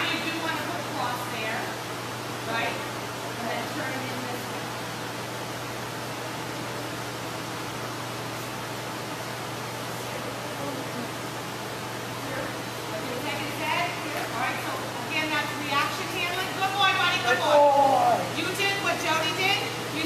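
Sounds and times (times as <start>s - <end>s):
steady hiss and low hum: 0.0s - 20.0s.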